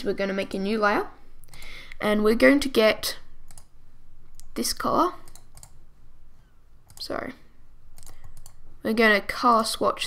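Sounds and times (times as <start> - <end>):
person speaking: 0.0 - 3.4, 4.4 - 5.4, 6.9 - 7.5, 8.8 - 10.0
faint computer input clicks: 8.0 - 8.6.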